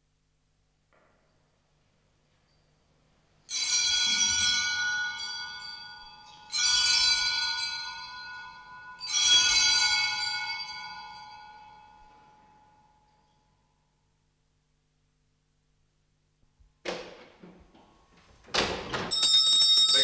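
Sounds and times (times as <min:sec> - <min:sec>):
small altar bells ringing: 0:01.2 - 0:14.3, 0:19.1 - 0:20.0.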